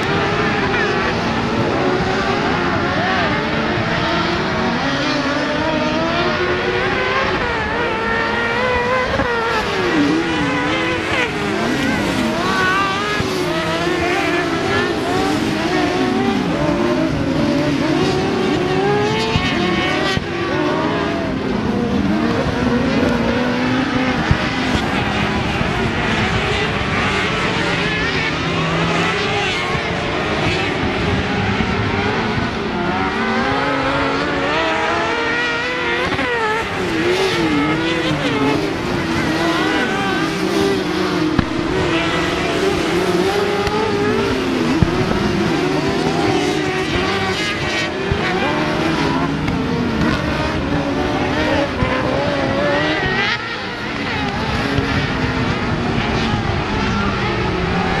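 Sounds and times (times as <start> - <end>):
racing buggy engines revving: 0.0 - 58.0.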